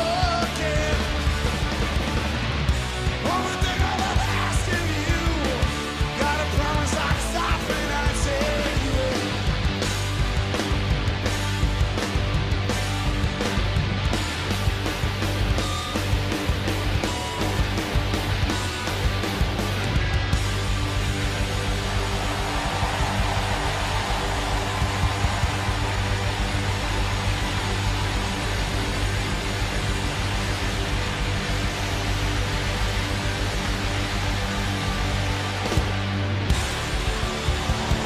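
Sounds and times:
live rock band playing loud: 0:00.0 - 0:38.0.

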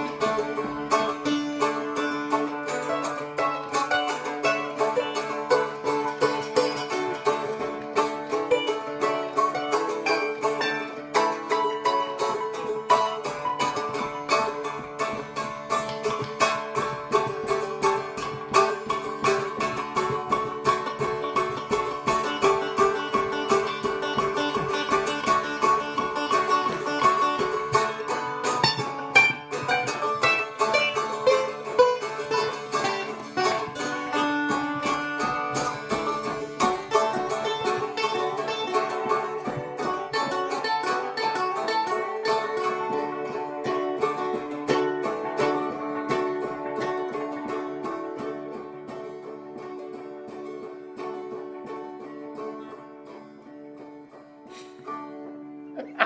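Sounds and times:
strummed stick dulcimers: 0:00.0 - 0:56.0.

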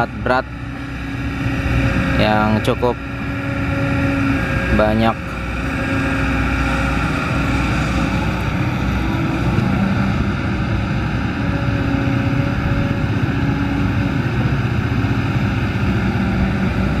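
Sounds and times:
excavator diesel engine running: 0:00.0 - 0:17.0.

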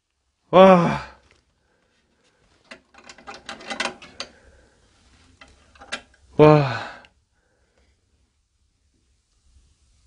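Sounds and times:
latch clicking: 0:02.7 - 0:04.3.

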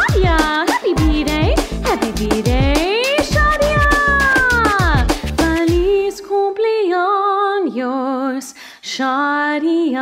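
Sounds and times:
drum beat: 0:00.0 - 0:06.0
upbeat birthday song: 0:00.0 - 0:08.0.

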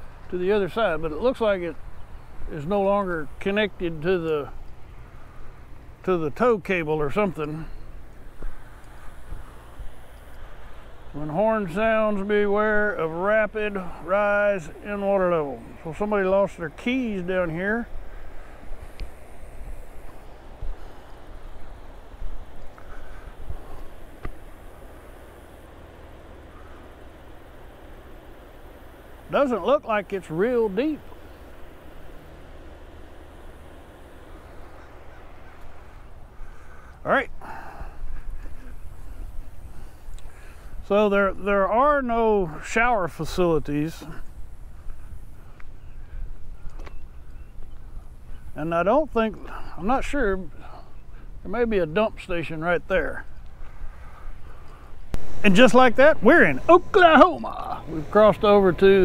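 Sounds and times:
outdoor background noise: 0:00.0 - 0:59.0.

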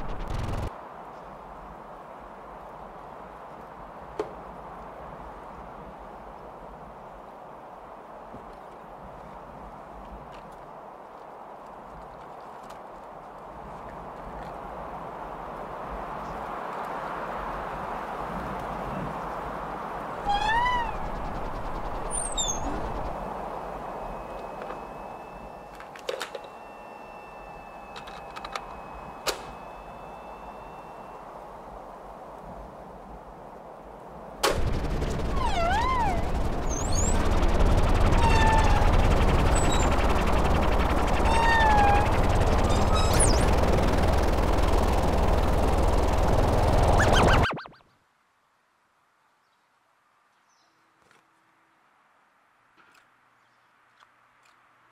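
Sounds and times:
dense crackling rattle: 0:00.0 - 0:00.7, 0:34.5 - 0:47.5
meow-like call: 0:20.2 - 0:21.1, 0:35.3 - 0:36.3, 0:41.2 - 0:42.0
wavering electronic tones: 0:20.2 - 0:25.8, 0:34.7 - 0:47.8
high whistle gliding downward: 0:20.3 - 0:25.8, 0:35.3 - 0:45.5.

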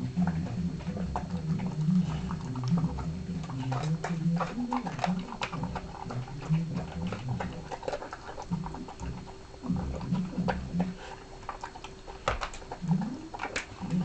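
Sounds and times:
dog crunching food: 0:00.0 - 0:14.0.

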